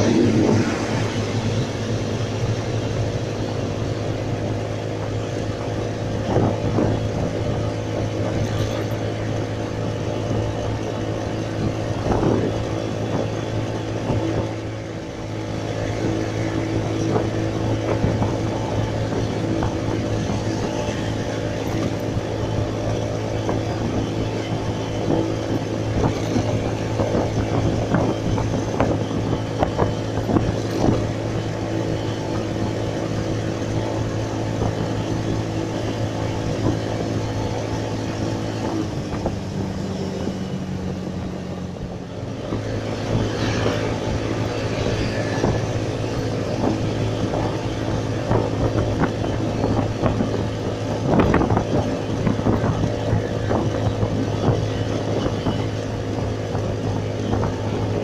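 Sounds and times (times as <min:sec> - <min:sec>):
motorcycle engine running: 0:00.0 - 0:58.0
road and wind noise: 0:00.0 - 0:58.0.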